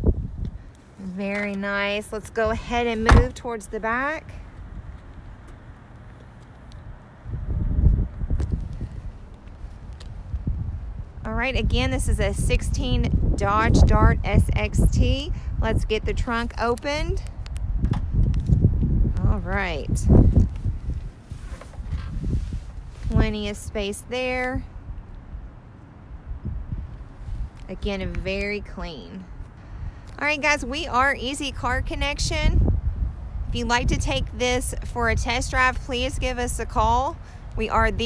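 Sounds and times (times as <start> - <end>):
wind rumble on microphone: 0.0 - 38.0
footsteps on asphalt: 0.2 - 11.2, 20.1 - 23.3
microphone handling noise: 7.3 - 10.8, 17.2 - 23.6.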